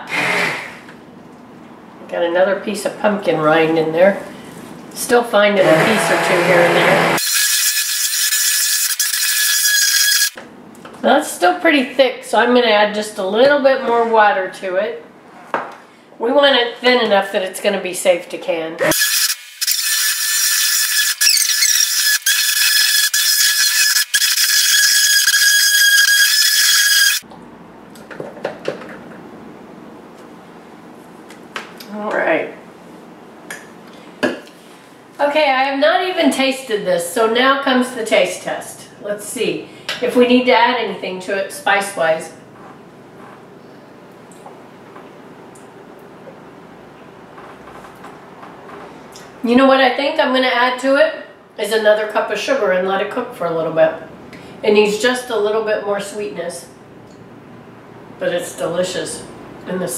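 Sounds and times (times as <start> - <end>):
immersion blender motor whine: 0.0 - 0.9, 5.6 - 10.4, 18.9 - 27.2.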